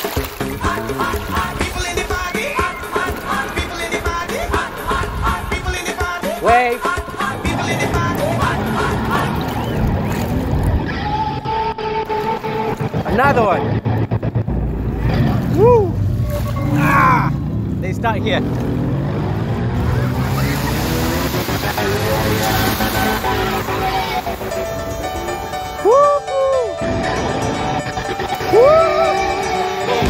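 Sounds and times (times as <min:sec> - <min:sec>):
people talking and calling out: 0:01.3 - 0:10.0
steady low rumble: 0:06.8 - 0:11.7, 0:12.5 - 0:25.5.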